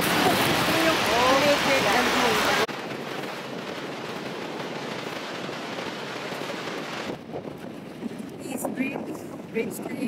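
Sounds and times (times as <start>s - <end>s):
waterfall rushing: 0.0s - 2.7s.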